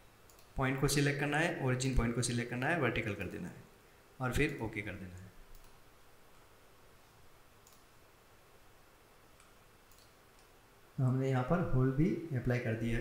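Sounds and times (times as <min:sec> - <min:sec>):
faint computer mouse clicks: 0:00.2 - 0:00.6, 0:05.5 - 0:05.8, 0:07.6 - 0:07.9, 0:09.4 - 0:10.6.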